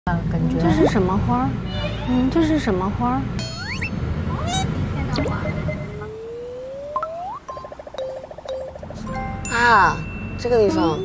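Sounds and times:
comic sound effects: 0:03.4 - 0:09.0
steady high tone: 0:03.4 - 0:11.0.

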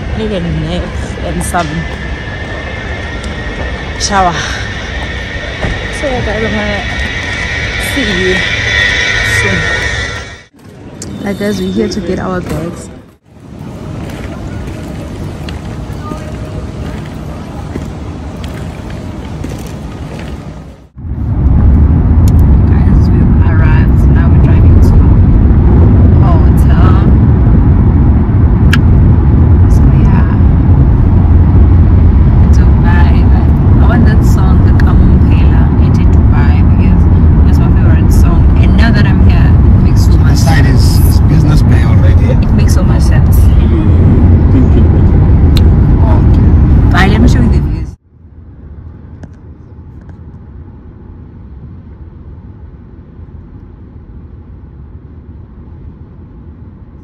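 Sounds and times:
car cabin low rumble: 0:32.3 - 0:47.8.

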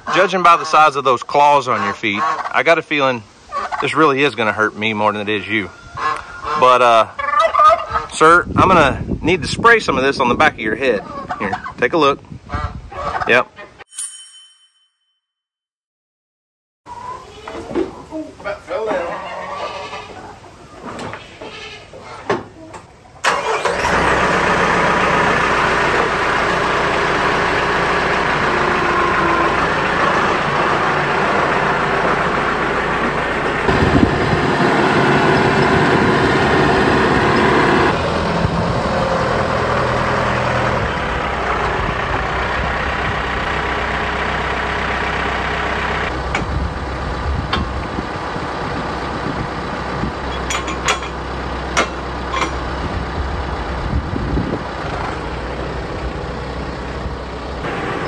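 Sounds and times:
tractor diesel engine running: 0:23.2 - 0:58.0.

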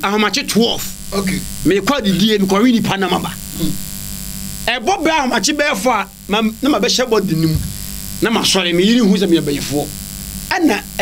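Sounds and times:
man speaking animatedly: 0:00.0 - 0:03.4, 0:04.7 - 0:09.9, 0:10.5 - 0:11.0
steady electrical buzz: 0:00.0 - 0:11.0.

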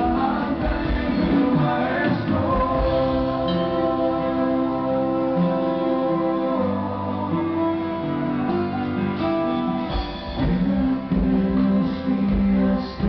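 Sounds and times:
acoustic guitars playing: 0:00.0 - 0:13.0.

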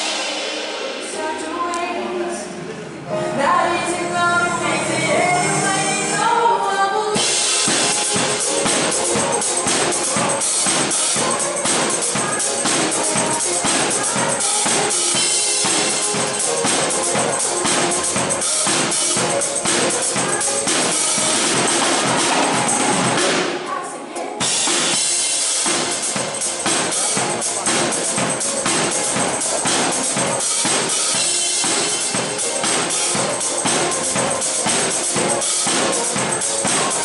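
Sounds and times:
live pop band playing: 0:00.0 - 0:37.0
woman singing into a microphone: 0:00.5 - 0:08.1, 0:10.7 - 0:16.4.

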